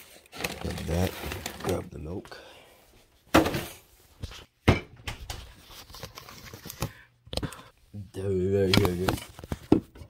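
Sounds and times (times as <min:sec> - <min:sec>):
household items knocking and clattering: 0:03.3 - 0:03.8, 0:04.6 - 0:05.4.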